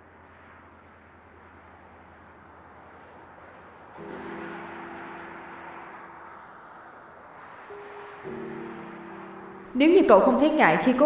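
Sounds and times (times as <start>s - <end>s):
street traffic noise: 0.0s - 11.0s
soft sustained chords: 4.0s - 11.0s.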